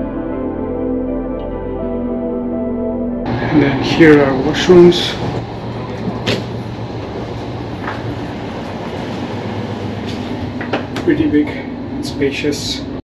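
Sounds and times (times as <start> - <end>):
train rumble: 3.3 - 13.0.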